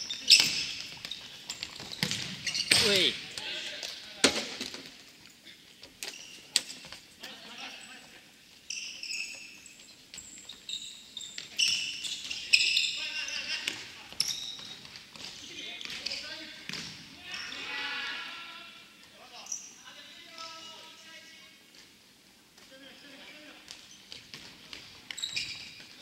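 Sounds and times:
shoes squeaking on gym floor: 0.0s - 4.0s, 5.3s - 7.1s, 7.8s - 16.7s, 19.4s - 21.1s, 23.2s - 26.0s.

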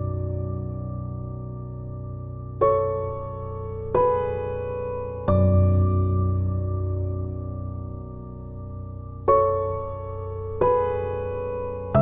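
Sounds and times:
soft piano chords: 0.0s - 12.0s.

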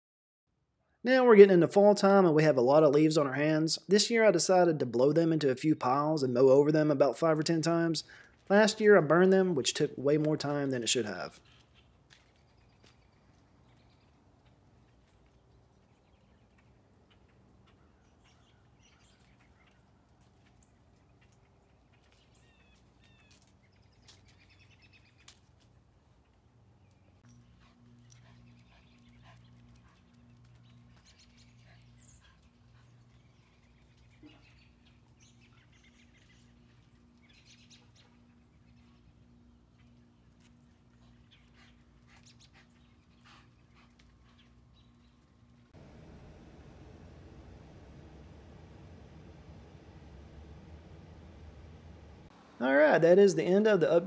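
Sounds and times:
bird chirps: 15.8s - 19.9s, 28.4s - 40.4s
low pulsing hum: 27.3s - 52.6s.

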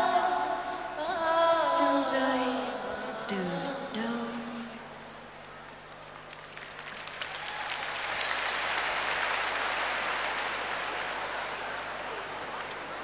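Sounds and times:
audience applauding: 6.0s - 13.0s.

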